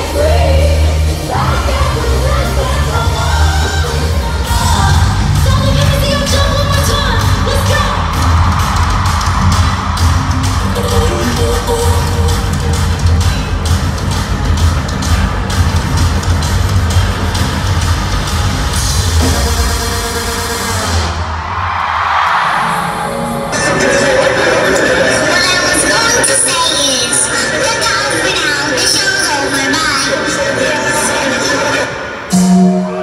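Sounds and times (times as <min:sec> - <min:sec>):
heavy bass beat: 0:00.0 - 0:21.2
pop music with singing: 0:00.0 - 0:21.5, 0:22.2 - 0:33.0.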